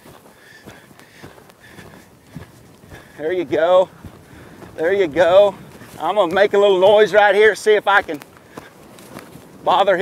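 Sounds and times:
horse hoofbeats on dirt: 0.0 - 10.0.

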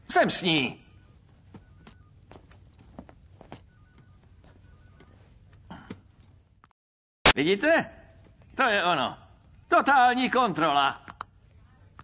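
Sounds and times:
faint electronic beeping: 3.4 - 5.4.

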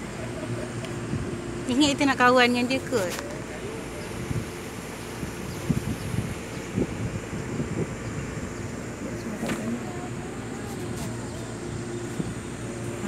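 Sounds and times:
boat motor droning: 0.0 - 13.0
wind rumbling on microphone: 0.0 - 13.0.

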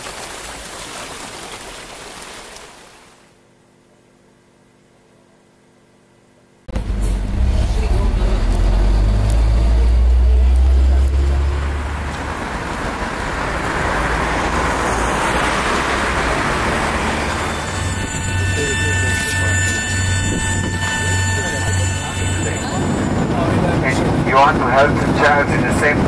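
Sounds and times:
steady high whine: 6.6 - 26.0
deep engine rumble: 6.7 - 26.0
vehicle passing: 6.7 - 26.0.

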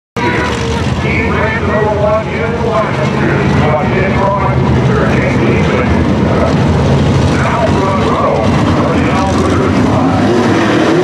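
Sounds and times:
voice over loudspeaker: 0.2 - 6.7, 7.3 - 11.0
race car engines: 0.2 - 11.0.

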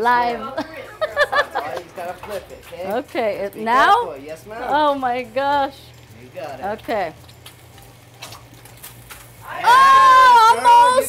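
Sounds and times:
low kitchen hum: 0.0 - 11.0
eggs sizzling in a skillet: 0.1 - 11.0.

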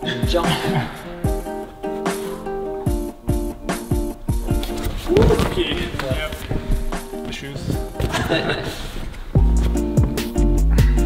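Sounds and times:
music with steady beat and plucked notes: 0.0 - 11.0.

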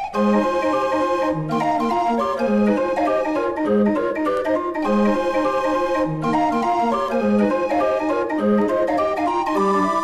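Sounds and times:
mechanical street organ jazz: 0.1 - 10.0.

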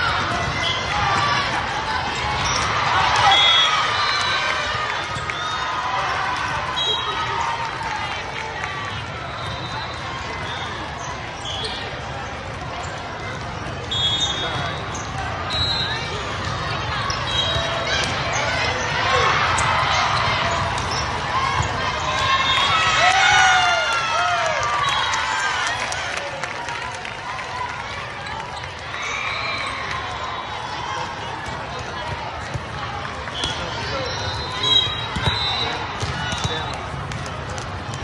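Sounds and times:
many overlapping voices: 0.0 - 23.1, 25.4 - 38.0
sneaker squeaks on court floor: 0.2 - 0.9, 2.2 - 4.2, 9.3 - 22.7, 33.3 - 37.0
volleyball contacts: 31.0 - 38.0.

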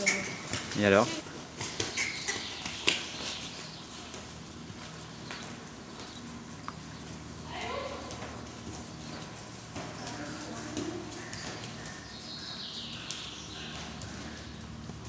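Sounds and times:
hoofbeats on sand: 0.2 - 15.0.

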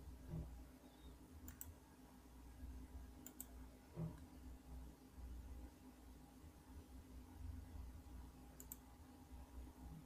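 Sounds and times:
faint clicks: 1.4 - 1.8, 3.2 - 4.3, 8.6 - 8.9.

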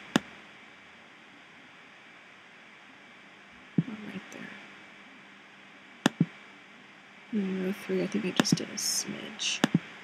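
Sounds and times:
room noise hiss: 0.0 - 10.0
sharp click: 6.1 - 6.3, 9.6 - 9.9.

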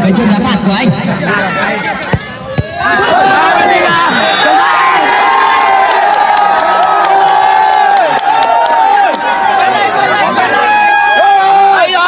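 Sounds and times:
crowd cheering and shouting: 1.0 - 12.0.

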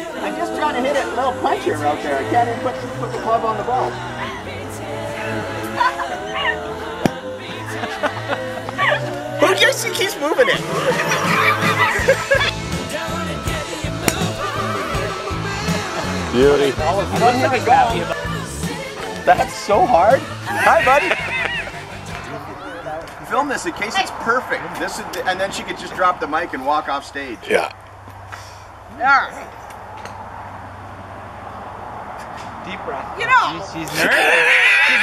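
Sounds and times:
background music with steady beat: 0.0 - 22.6
golf club striking ball: 7.0 - 7.2, 14.0 - 14.4.

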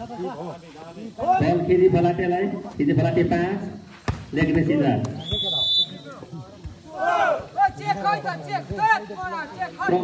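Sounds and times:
spectators talking: 0.0 - 10.0
referee's whistle blast: 5.2 - 6.2.

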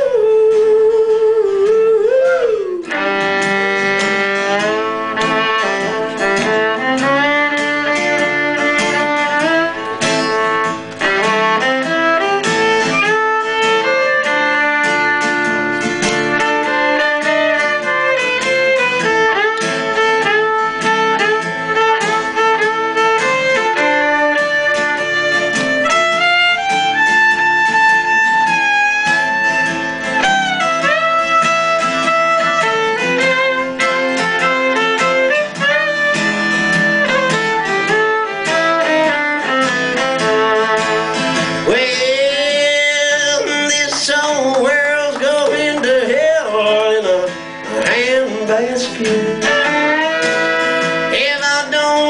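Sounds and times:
fiddle sliding notes: 0.0 - 52.0
strummed acoustic guitar: 0.0 - 52.0.

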